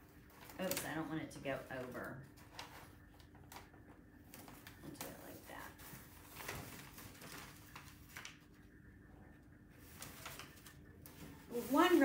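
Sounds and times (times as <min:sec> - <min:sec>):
paper and tape rustling: 0:00.0 - 0:08.6, 0:09.8 - 0:12.0
low room hum: 0:00.0 - 0:12.0.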